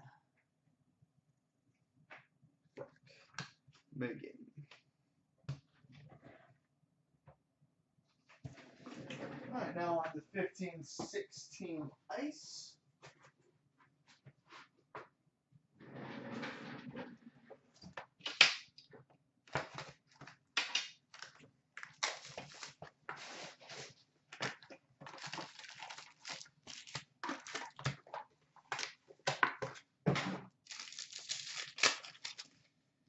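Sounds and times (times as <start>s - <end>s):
plastic and foil packs tearing: 21.1s - 22.8s, 25.1s - 27.9s, 30.6s - 32.6s.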